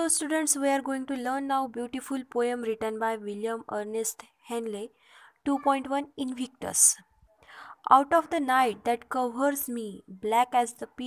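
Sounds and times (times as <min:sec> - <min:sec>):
woman reading aloud: 0:00.0 - 0:07.1, 0:07.8 - 0:11.0.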